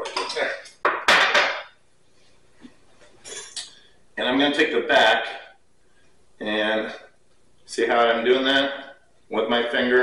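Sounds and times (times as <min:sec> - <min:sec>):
sharp knock: 0:00.8 - 0:01.7
knife and metal dishes clattering: 0:03.2 - 0:03.8.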